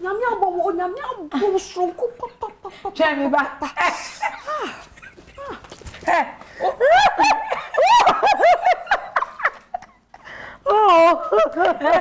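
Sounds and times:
woman laughing hard: 3.6s - 10.1s.

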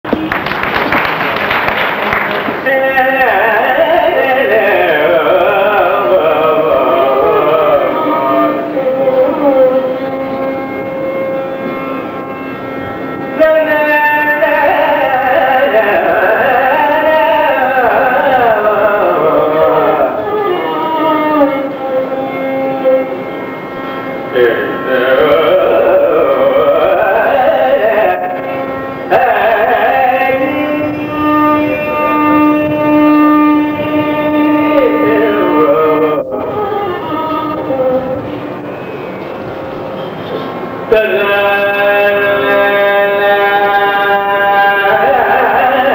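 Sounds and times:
tanpura drone: 0.1s - 45.9s
man singing a long held note: 2.6s - 10.8s, 13.3s - 23.2s, 24.2s - 38.6s, 40.9s - 45.9s.

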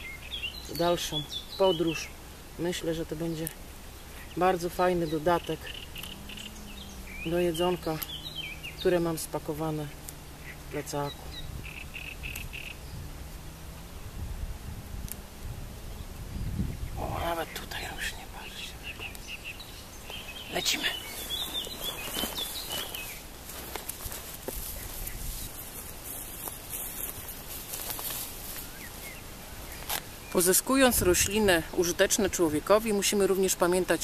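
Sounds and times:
low steady rumble: 0.0s - 27.7s
grass and clothing rustling: 0.0s - 34.0s
wild animal high calls: 5.4s - 8.9s, 9.9s - 14.1s.

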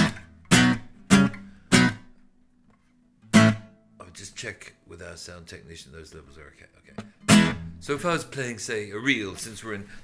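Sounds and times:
strummed nylon-string guitar chords: 0.0s - 4.0s, 6.9s - 8.5s.

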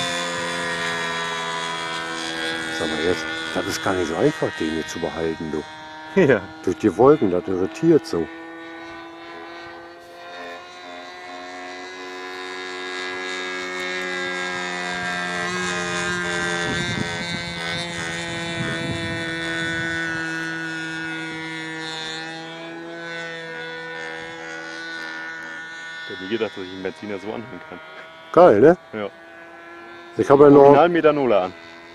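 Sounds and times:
model plane engine droning: 0.0s - 31.9s.

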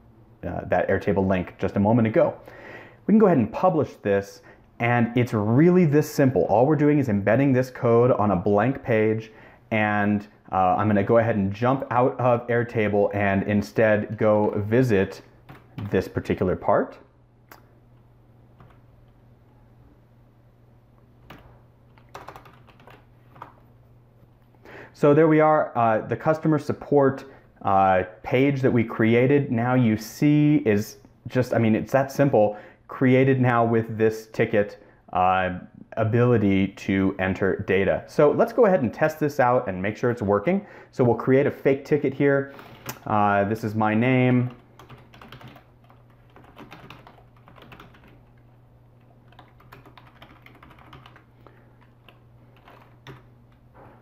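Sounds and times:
computer keyboard typing: 15.5s - 16.1s, 18.6s - 18.8s, 21.2s - 23.6s, 44.4s - 53.3s.

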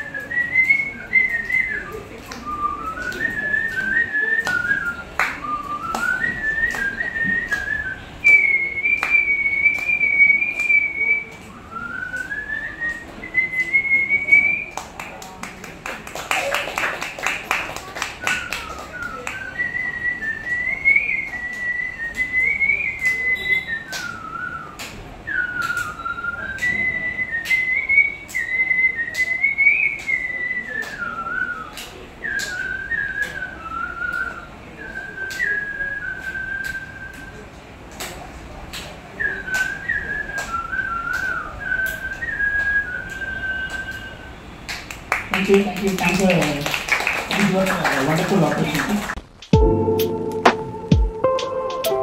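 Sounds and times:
man whistling through speaker: 0.0s - 14.8s, 18.2s - 37.4s, 39.1s - 44.4s.

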